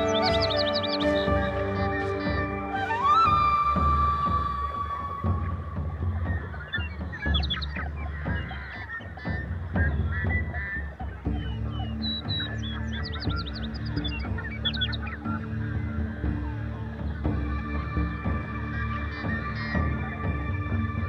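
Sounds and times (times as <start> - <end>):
flock of birds calling: 0.0 - 21.0
soft ambient music: 0.0 - 21.0.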